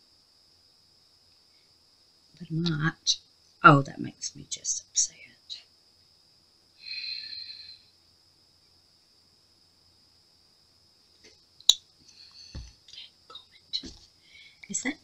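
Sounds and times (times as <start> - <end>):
whispered breath: 6.8 - 7.9, 12.0 - 14.7.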